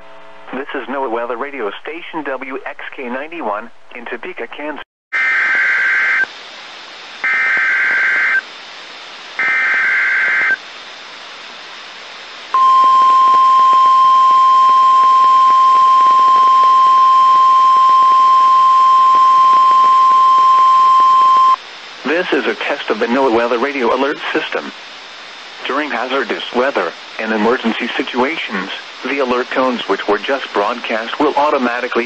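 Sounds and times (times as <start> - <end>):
steady warning alarm tone: 7.2 - 8.4, 9.4 - 10.6, 12.6 - 21.6.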